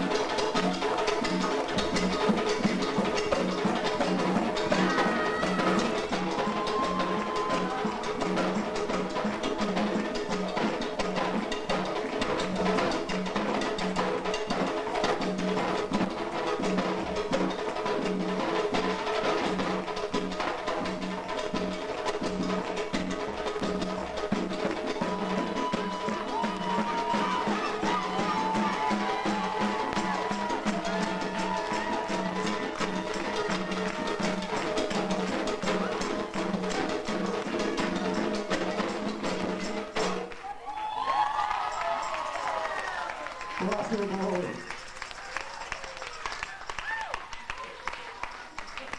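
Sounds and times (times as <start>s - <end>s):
hand drums playing: 0.0s - 40.4s.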